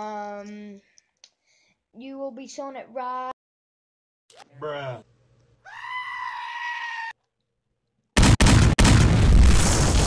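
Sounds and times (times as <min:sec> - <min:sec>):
loud distorted blast: 0:08.2 - 0:10.0.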